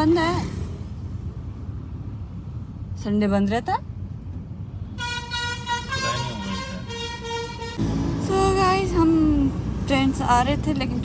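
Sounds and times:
traffic rumble: 0.0s - 11.0s
vehicle horn held tone: 5.0s - 7.8s.

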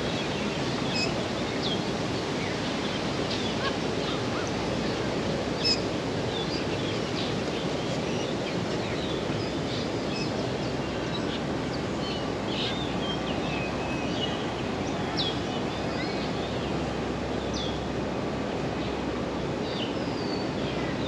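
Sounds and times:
low rush of city noise: 0.0s - 21.0s.

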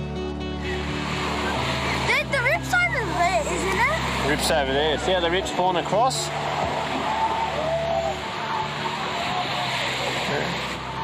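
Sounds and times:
steady rush of noise: 0.4s - 11.0s
distant voices chattering: 0.6s - 11.0s.

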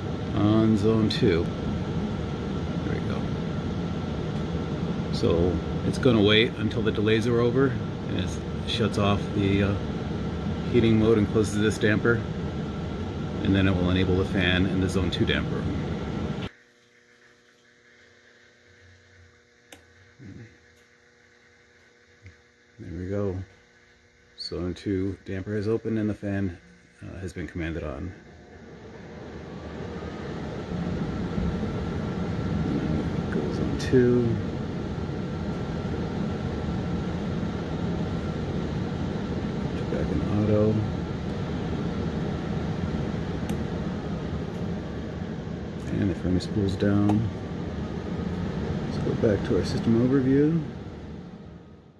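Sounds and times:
blower fan whooshing: 0.0s - 51.9s
faint electrical hum: 0.0s - 51.9s.

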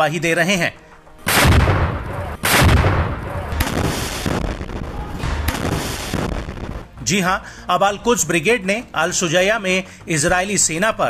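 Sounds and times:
heavy boom: 1.3s - 7.0s
rumbling: 1.3s - 7.0s
sharp gunshots: 1.3s - 7.0s.

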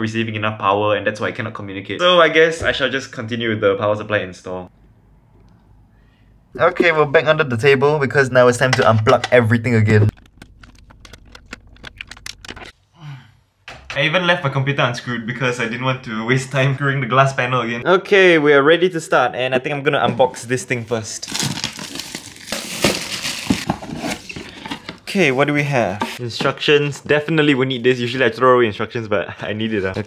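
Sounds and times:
cables and plugs clicking: 10.1s - 12.8s
plastic wrap crinkling: 21.2s - 25.1s.

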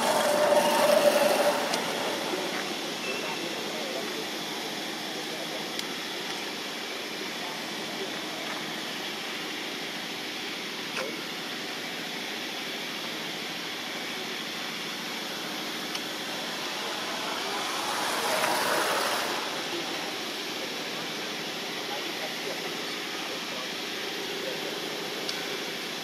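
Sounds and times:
outdoor background noise: 0.0s - 26.0s.

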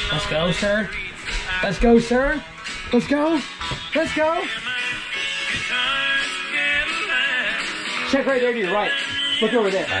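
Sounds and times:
guitar music: 0.0s - 10.0s.

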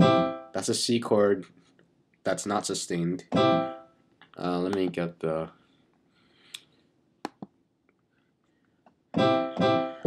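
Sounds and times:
piano chord: 0.0s - 0.5s, 3.3s - 3.8s, 9.2s - 10.0s.

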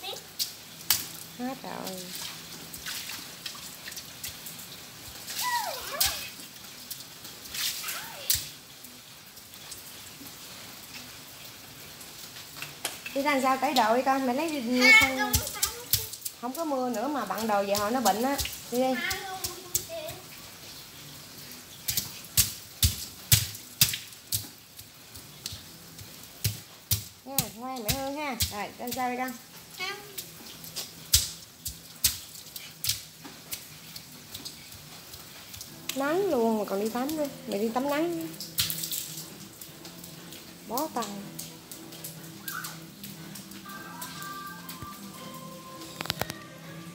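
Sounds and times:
bare feet splashing in puddles: 0.0s - 8.6s, 12.3s - 46.6s
water dripping: 0.0s - 46.9s
footsteps on wet concrete: 12.6s - 20.3s, 21.8s - 46.6s.

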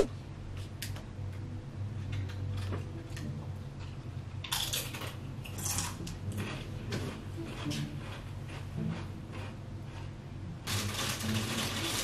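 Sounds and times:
low steady hum: 0.0s - 12.0s
plastic chip bag crinkling: 10.7s - 12.0s.

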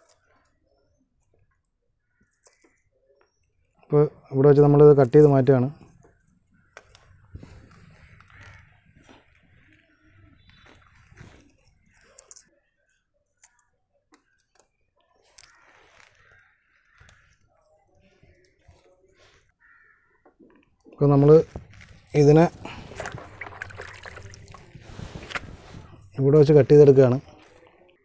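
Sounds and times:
hands handling wet mud: 21.1s - 26.6s.

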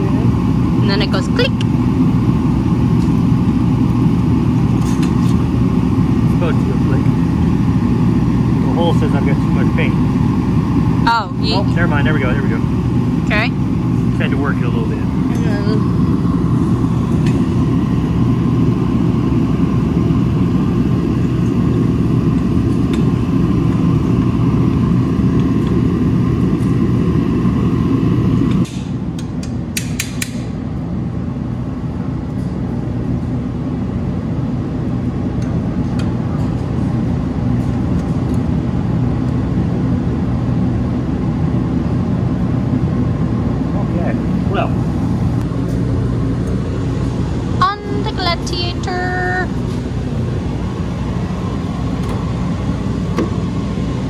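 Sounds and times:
low rumbling background noise: 0.0s - 54.0s.

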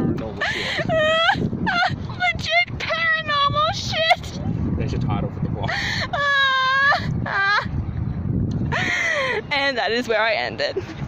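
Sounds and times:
low wind rumble on microphone: 0.0s - 11.0s
woman making ghostly wails: 0.4s - 2.0s, 6.0s - 7.7s.

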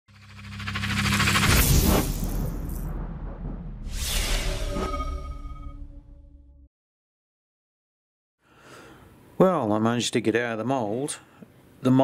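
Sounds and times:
whoosh: 0.1s - 6.1s
low boom: 1.0s - 4.1s.

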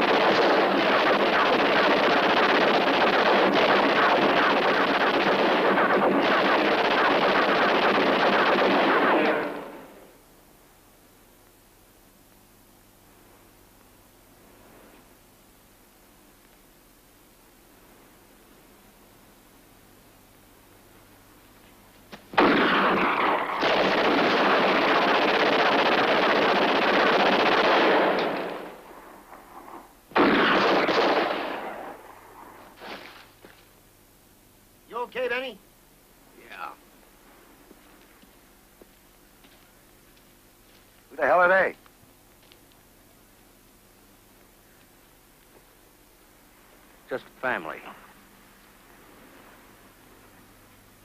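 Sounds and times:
rapid gunfire volley: 0.0s - 10.1s, 22.3s - 29.0s, 30.1s - 32.1s
low hiss: 0.0s - 51.0s.

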